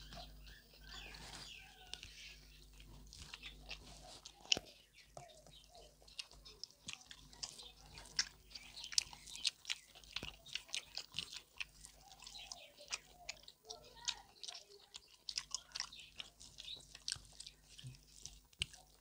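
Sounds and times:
chewing mouth clicks: 0.0 - 19.0.

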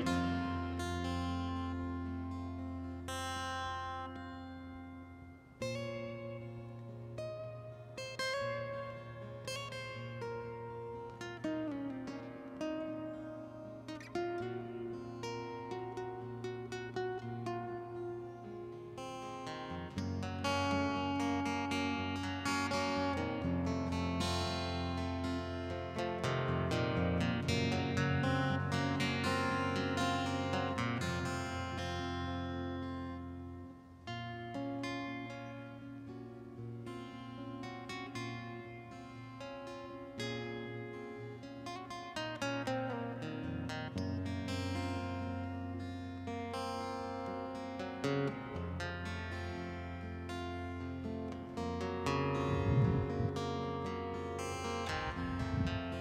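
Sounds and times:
acoustic guitar picking: 0.0 - 56.0
deep low bass part: 52.5 - 53.4.

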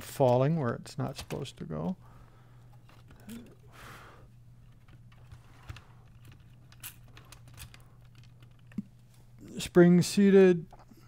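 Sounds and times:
steady low hum: 0.0 - 11.0
small parts clicking and rustling: 2.6 - 3.7, 4.6 - 9.0.

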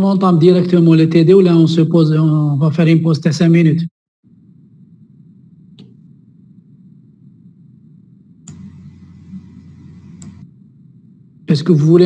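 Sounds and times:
click: 5.7 - 6.0, 8.4 - 8.8, 10.2 - 10.4
microphone hiss: 8.3 - 12.0.

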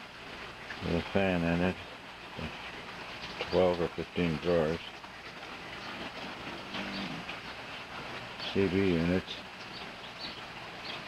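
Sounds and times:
low rumble and hiss: 0.0 - 11.0.

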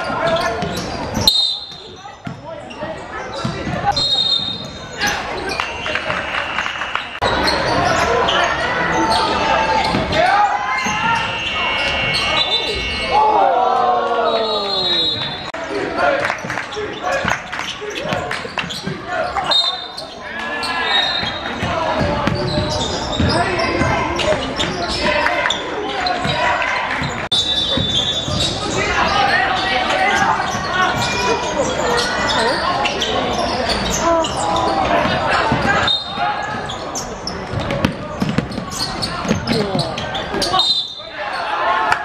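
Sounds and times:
people shouting and chattering: 0.0 - 42.0.

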